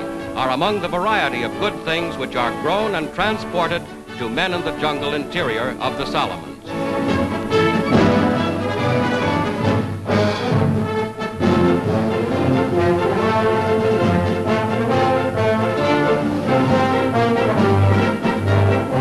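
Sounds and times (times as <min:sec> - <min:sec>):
orchestral music with brass: 0:00.0 - 0:19.0.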